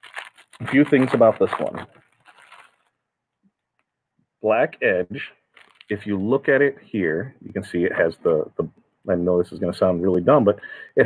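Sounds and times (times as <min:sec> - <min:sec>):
fabric face mask rustling: 0:00.0 - 0:03.0, 0:05.5 - 0:06.0.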